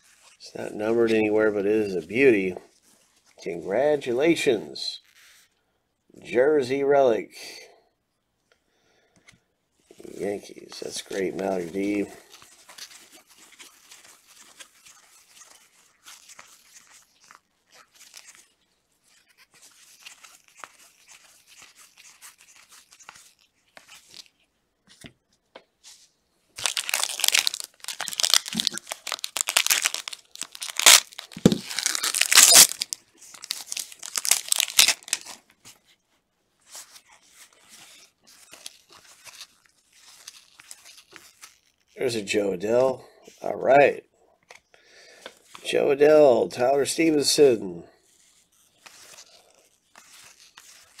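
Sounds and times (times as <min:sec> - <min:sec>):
cards rustling: 0:09.8 - 0:36.0, 0:36.6 - 0:43.4, 0:48.1 - 0:51.0
foil wrapper tearing and crinkling: 0:10.0 - 0:24.4, 0:26.6 - 0:35.6, 0:36.7 - 0:42.0, 0:48.2 - 0:51.0.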